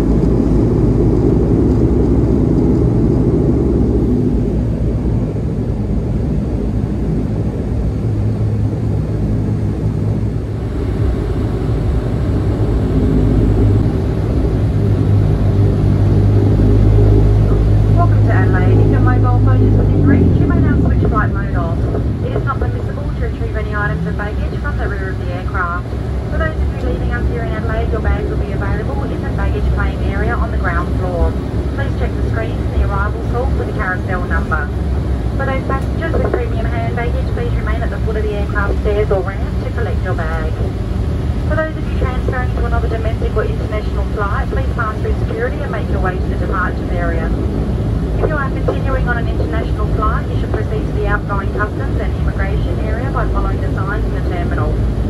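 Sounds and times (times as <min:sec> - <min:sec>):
turboprop engines droning: 0:00.0 - 0:55.0
announcement over cabin speaker: 0:16.1 - 0:55.0.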